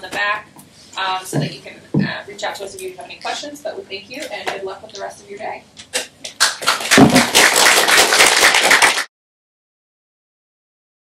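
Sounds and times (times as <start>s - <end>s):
audience applauding: 6.4s - 9.1s.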